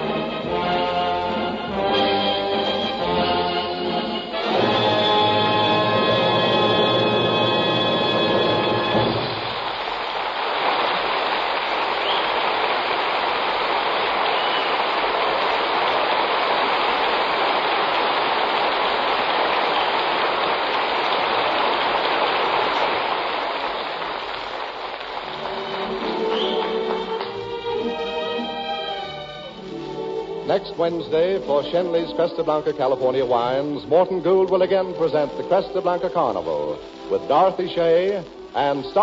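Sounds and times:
orchestral music: 0.0s - 9.6s, 25.2s - 39.0s
audience applauding: 4.3s - 29.6s.

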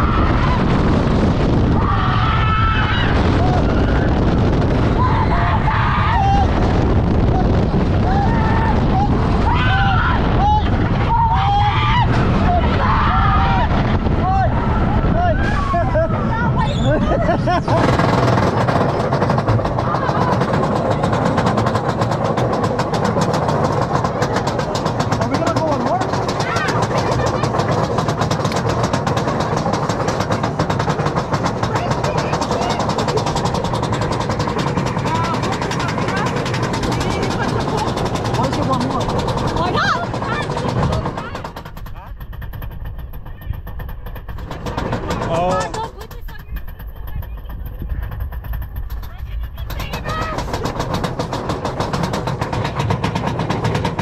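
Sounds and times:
wind rushing over microphone: 0.0s - 23.8s
roller coaster train on track: 0.0s - 54.0s
riders' voices: 28.8s - 50.9s.

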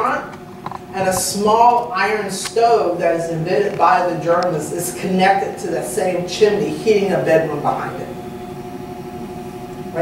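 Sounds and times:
machine hum with tones: 0.0s - 10.0s.

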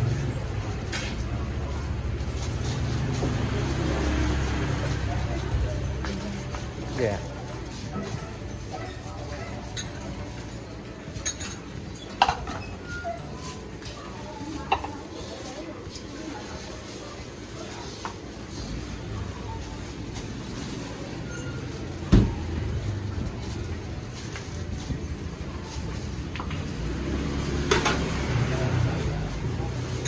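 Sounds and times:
ceramic bowls and utensils clinking: 0.8s - 15.6s.

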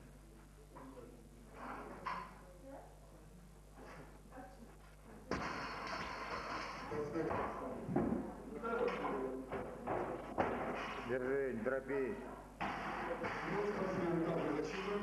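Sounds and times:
voices in a hall: 0.0s - 15.0s.

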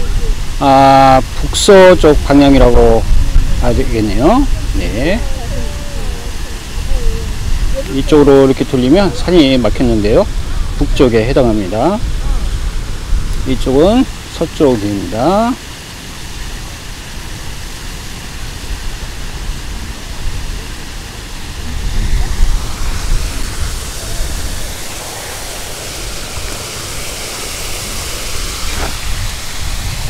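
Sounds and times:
waterfall rushing: 0.0s - 30.0s.

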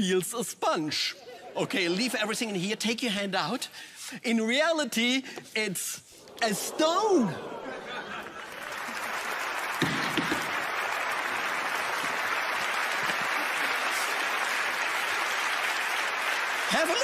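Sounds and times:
audience applauding: 6.2s - 17.0s.

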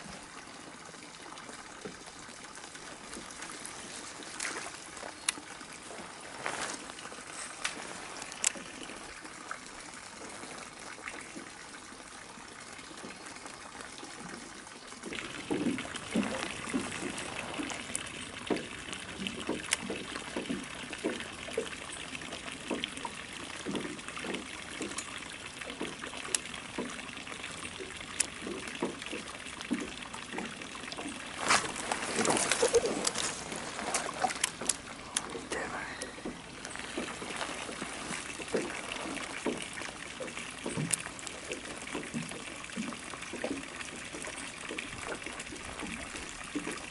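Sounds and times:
small water plops: 0.0s - 46.9s
water trickling and dripping: 0.0s - 46.9s.

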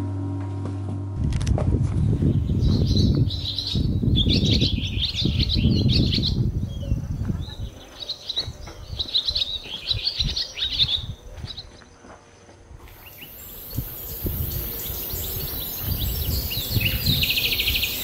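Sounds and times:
low rumble: 0.0s - 7.7s
small birds chirping: 1.9s - 18.0s.

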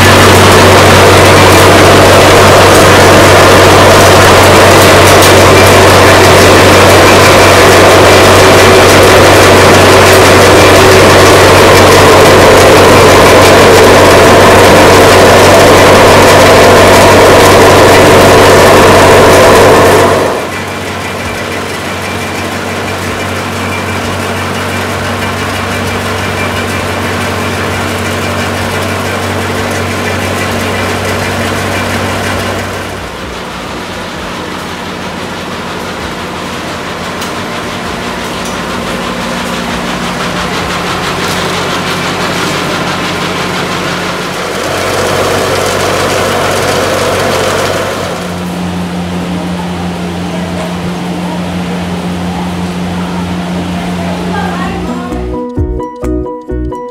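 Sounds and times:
machinery motor hum: 0.0s - 55.8s.

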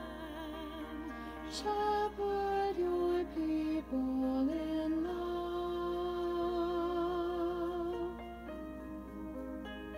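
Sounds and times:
musical accompaniment: 0.0s - 9.9s.

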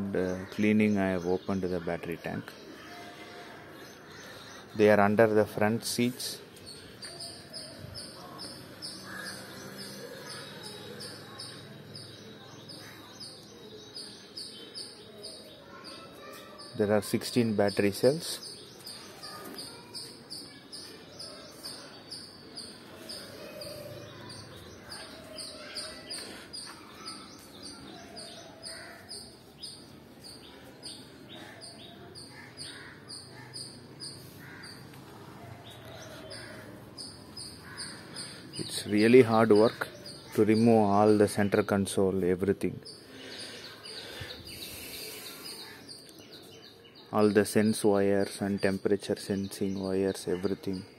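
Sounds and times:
bird chirping: 0.0s - 50.9s.

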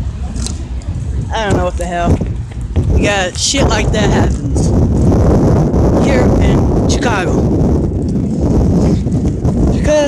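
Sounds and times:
low street rumble: 0.0s - 10.0s
person's voice: 3.0s - 4.8s, 6.0s - 7.5s, 9.7s - 10.0s.

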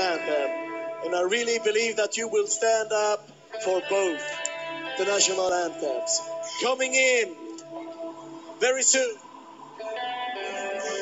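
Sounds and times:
entrance music with long held notes: 0.0s - 11.0s.

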